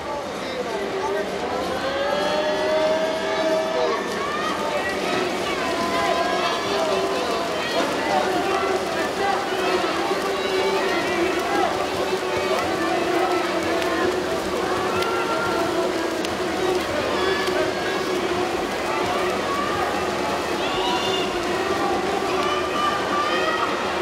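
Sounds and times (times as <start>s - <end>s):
crowd cheering and shouting: 0.4s - 24.0s.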